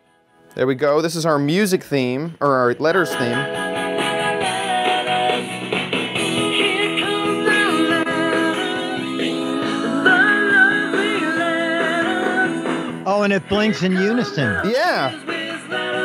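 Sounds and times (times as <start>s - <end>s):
song with guitar on small speaker: 2.8s - 16.0s.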